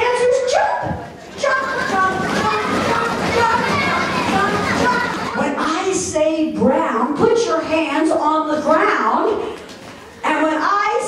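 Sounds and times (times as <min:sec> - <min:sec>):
crowd of children chattering: 0:00.0 - 0:06.1.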